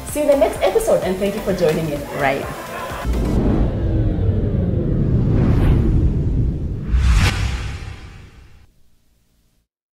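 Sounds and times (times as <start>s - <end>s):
deep steady rumble: 3.1s - 8.8s.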